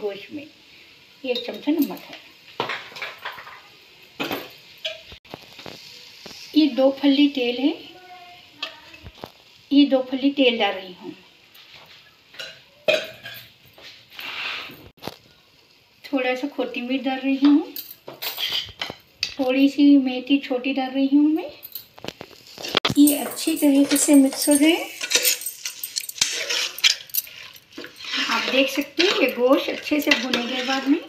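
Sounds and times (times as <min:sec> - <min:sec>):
spoon scraping metal pot: 0:22.1 - 0:31.0
bangles jingling: 0:22.9 - 0:30.6.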